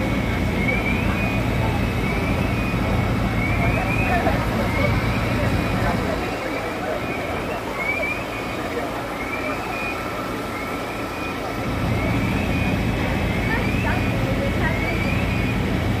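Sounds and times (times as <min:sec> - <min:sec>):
diesel engines idling: 0:00.0 - 0:16.0
street traffic: 0:00.0 - 0:16.0.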